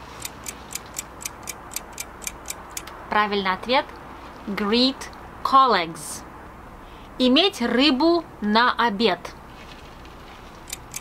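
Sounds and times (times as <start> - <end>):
clock ticking: 0.1 - 2.9, 10.6 - 11.0.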